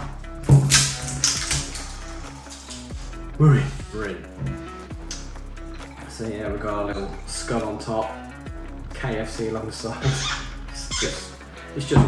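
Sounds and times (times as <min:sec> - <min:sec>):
background music with steady beat: 0:00.0 - 0:12.0
bottle seal tearing and crackling: 0:00.4 - 0:02.9.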